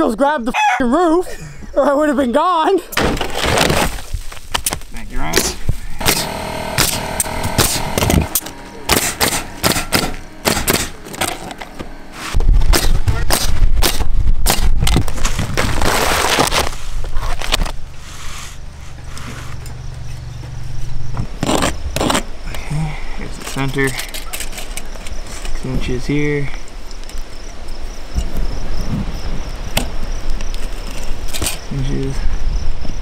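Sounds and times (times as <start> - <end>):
nail gun firing: 5.4 - 11.9, 12.7 - 15.0
loud low drone: 6.0 - 13.8.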